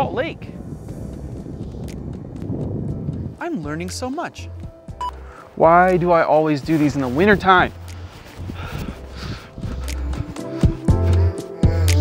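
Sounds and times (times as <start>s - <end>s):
wind rumbling on microphone: 0.0s - 5.0s, 5.7s - 10.8s
footsteps on salt crust: 6.5s - 9.7s.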